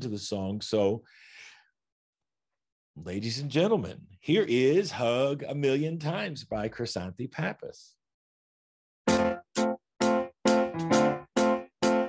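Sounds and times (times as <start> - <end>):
man's soft intake of breath: 1.0 - 1.7.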